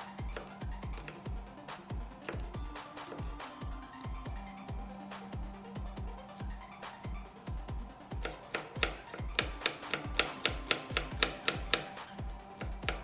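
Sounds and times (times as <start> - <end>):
electronic music with kick drum: 0.0 - 13.0
knife tapping on cutting board: 8.2 - 11.9.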